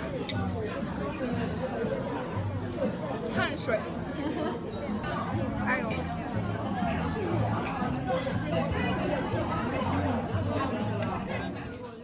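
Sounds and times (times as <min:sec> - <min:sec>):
hubbub of voices: 0:00.0 - 0:12.0.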